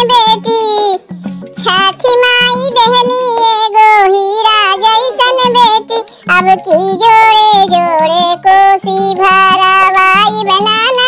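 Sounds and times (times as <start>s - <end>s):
high-pitched voice singing: 0.0s - 1.0s, 1.6s - 11.0s
musical accompaniment: 0.0s - 11.0s.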